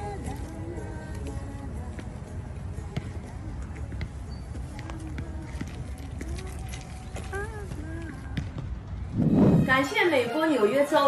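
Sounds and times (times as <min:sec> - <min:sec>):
music: 0:00.0 - 0:11.0
low wind rumble: 0:05.3 - 0:10.1
woman speaking: 0:09.6 - 0:11.0.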